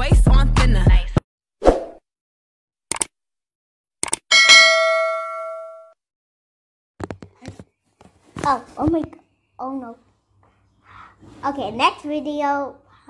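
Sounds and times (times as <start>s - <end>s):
bell-like ding: 4.3s - 6.0s.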